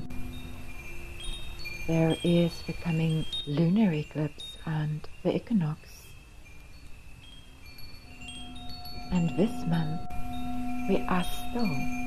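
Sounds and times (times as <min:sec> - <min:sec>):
lower held chime tone: 0:00.0 - 0:05.4, 0:06.1 - 0:12.0
high chimes ringing: 0:00.0 - 0:12.0.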